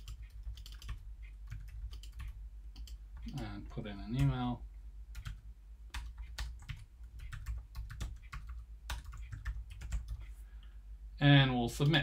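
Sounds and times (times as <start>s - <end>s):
typing on computer keyboard: 0.0s - 3.5s, 5.2s - 10.3s.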